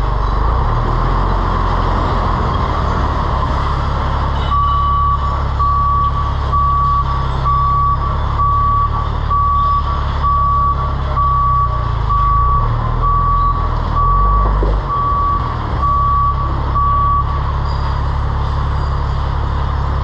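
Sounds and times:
diesel truck engine running: 0:00.0 - 0:20.0
truck backup alarm beeping: 0:04.2 - 0:19.2.

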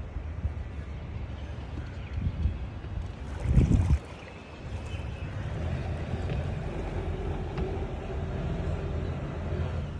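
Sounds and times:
boat motor rumbling: 0:02.7 - 0:09.9.

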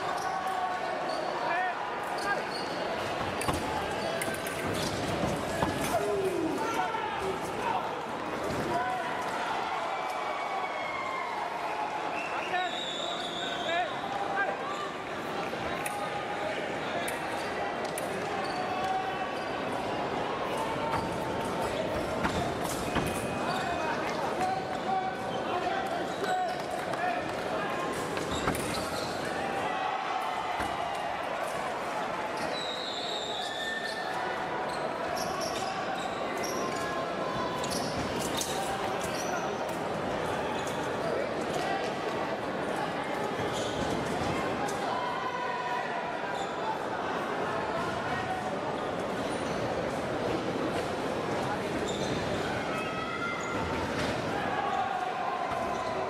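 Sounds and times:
hubbub of voices in hall: 0:00.0 - 0:56.0.

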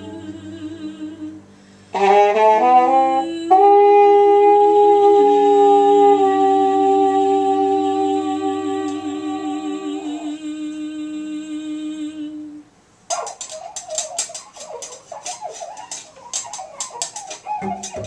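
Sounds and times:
person humming with vibrato: 0:00.0 - 0:12.6.

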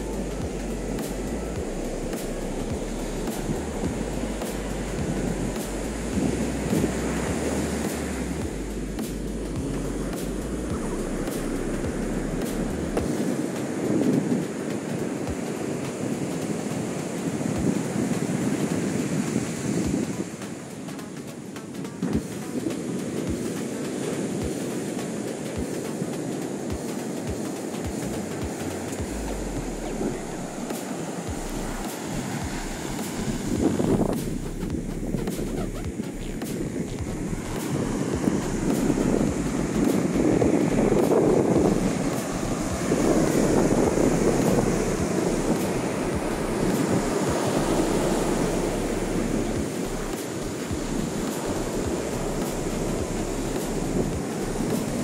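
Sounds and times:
wind buffeting microphone: 0:00.0 - 0:20.9, 0:21.8 - 0:55.0
ocean surf breaking on beach: 0:00.0 - 0:34.3, 0:35.3 - 0:55.0.

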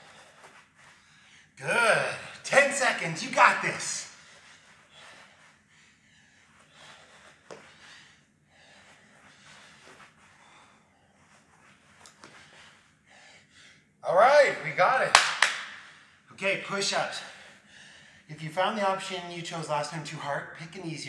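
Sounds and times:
man breathing hard: 0:04.1 - 0:11.5, 0:12.2 - 0:14.0, 0:17.2 - 0:18.3.

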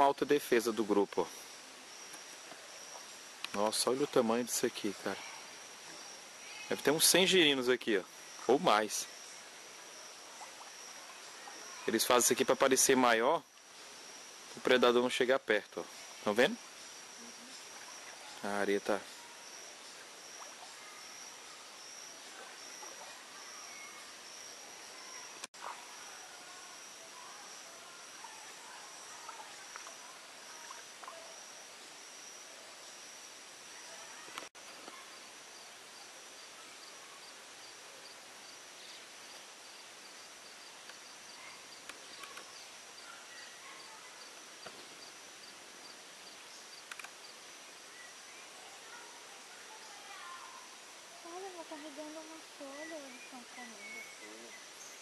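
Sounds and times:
high-pitched insect trilling: 0:00.0 - 0:47.6, 0:48.2 - 0:55.0
faint background hiss: 0:00.0 - 0:55.0
fast pulsing insect call: 0:00.0 - 0:55.0.

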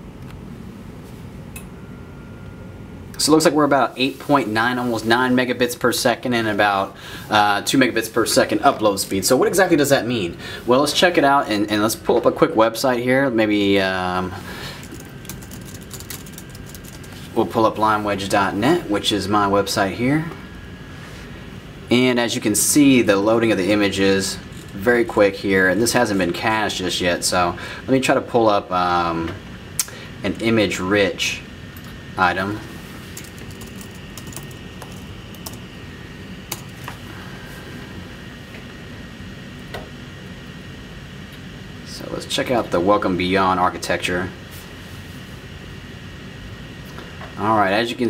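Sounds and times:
low room hum: 0:00.0 - 0:48.0
laptop keyboard typing: 0:14.8 - 0:17.2, 0:33.2 - 0:35.6.

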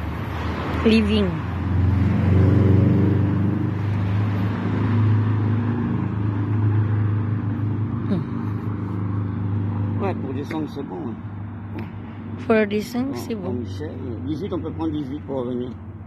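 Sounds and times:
car engine humming: 0:00.0 - 0:16.0
traffic rushing: 0:00.0 - 0:16.0.

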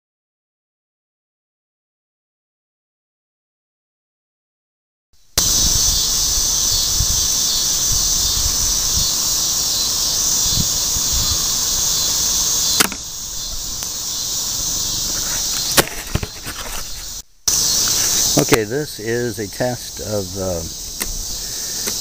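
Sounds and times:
insects chirring: 0:05.2 - 0:22.0
camera handling rumble: 0:15.1 - 0:17.2.

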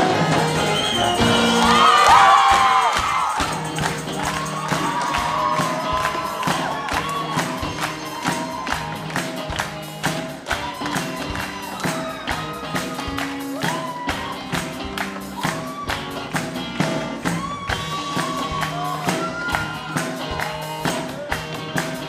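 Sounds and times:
drums keeping a steady beat: 0:00.0 - 0:22.0.

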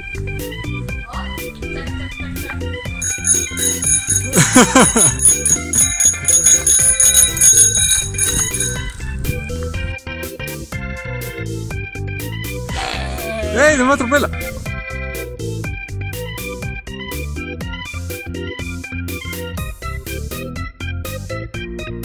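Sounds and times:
bicycle bell ringing: 0:03.0 - 0:09.1.

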